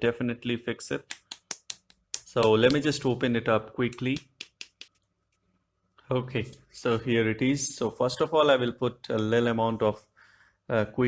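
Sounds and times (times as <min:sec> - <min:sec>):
tube cap clicks and scrapes: 0:01.0 - 0:02.9.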